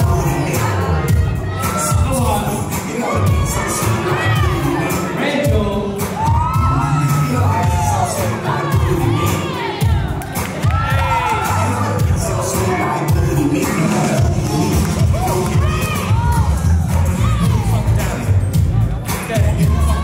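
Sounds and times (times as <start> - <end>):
dance music with pounding bass: 0.0 - 20.0
crowd cheering and whooping: 1.0 - 2.3, 2.9 - 5.2, 6.0 - 13.1, 13.8 - 17.9.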